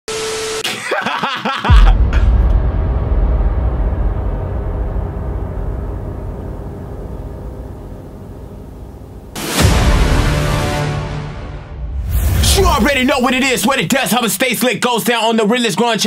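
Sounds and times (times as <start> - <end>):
deep rumbling boom: 1.8 - 13.9
steady tone: 2.0 - 14.0.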